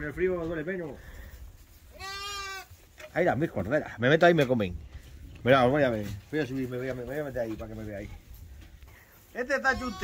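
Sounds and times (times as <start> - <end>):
lamb bleating: 1.9 - 2.7, 9.6 - 10.0.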